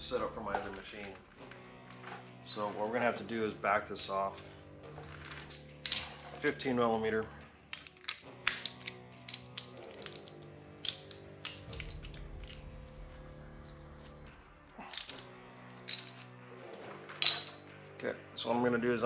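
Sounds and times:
quiet background music: 0.0s - 19.0s.

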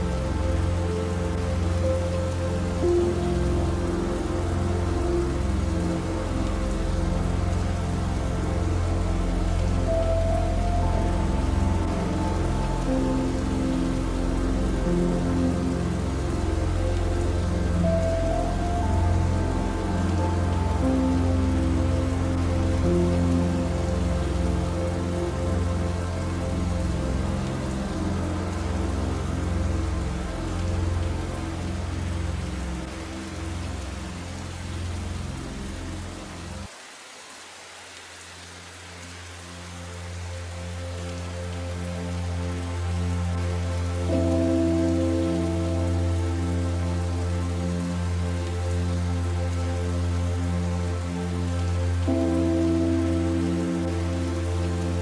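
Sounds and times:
deep low drone: 0.0s - 36.7s
gentle background music: 0.0s - 55.0s
soft rain: 0.0s - 55.0s.

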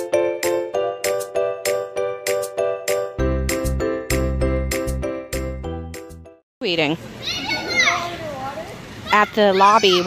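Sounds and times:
child high drawn-out call: 7.2s - 8.4s
children's voices: 7.2s - 10.0s.

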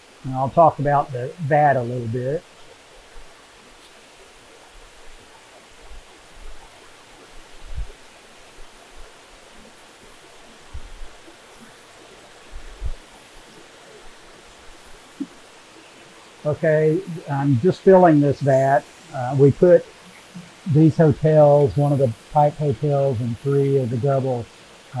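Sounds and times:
soft low thumps: 7.6s - 8.0s, 10.7s - 11.2s, 12.5s - 13.1s.

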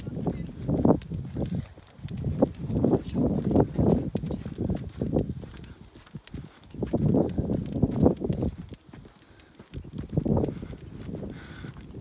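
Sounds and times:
footsteps on packed snow: 0.0s - 12.0s.

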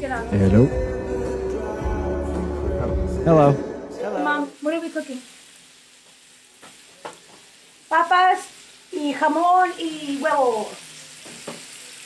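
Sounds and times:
food sizzling in a pan: 4.0s - 12.0s.

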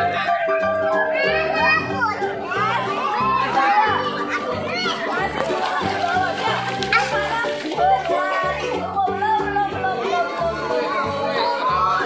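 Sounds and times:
background music with beat: 0.0s - 12.0s
children shouting: 0.0s - 12.0s.

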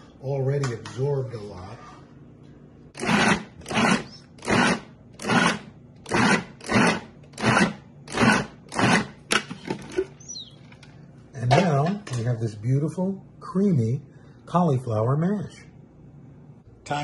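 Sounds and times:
food processor pulsing: 3.0s - 9.2s.

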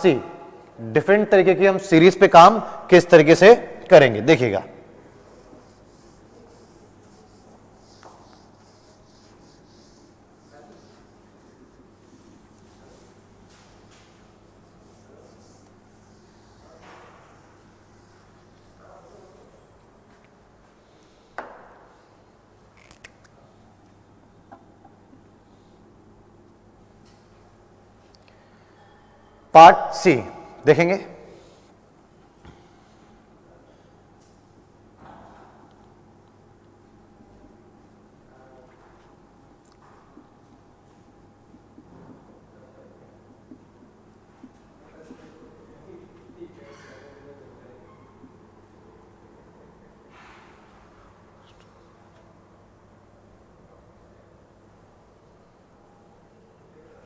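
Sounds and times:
room hum: 0.0s - 57.0s
marker scratch: 5.2s - 19.3s.

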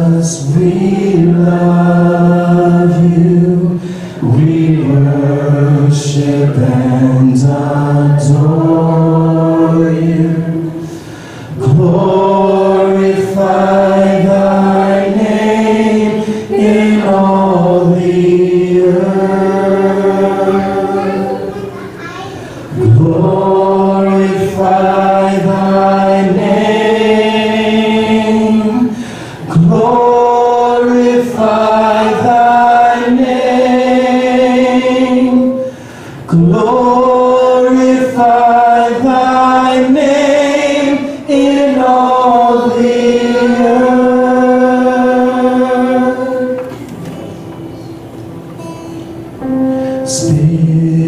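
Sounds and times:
voices singing worship song: 0.0s - 51.0s.

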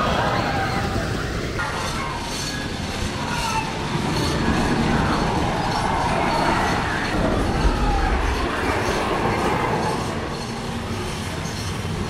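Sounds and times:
faint voices: 0.0s - 12.0s
roller coaster rumbling on wooden track: 0.0s - 12.0s.

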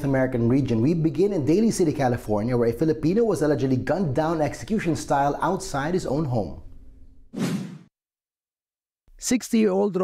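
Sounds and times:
short whoosh: 7.4s - 7.9s.

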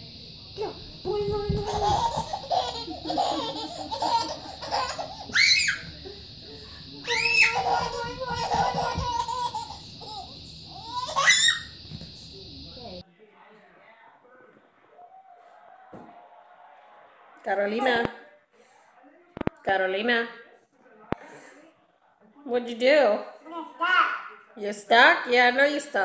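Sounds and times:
baby laughing and squealing: 1.6s - 6.0s, 7.0s - 11.8s.

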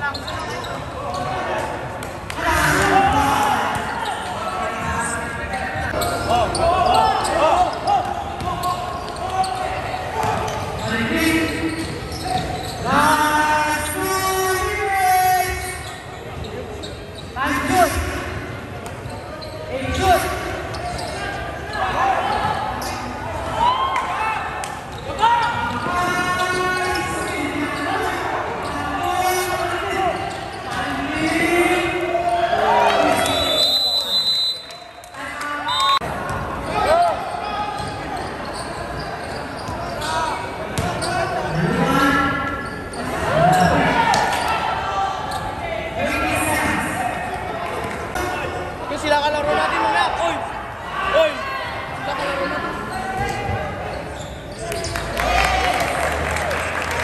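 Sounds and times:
basketball bouncing on wooden court: 40.8s - 41.1s.

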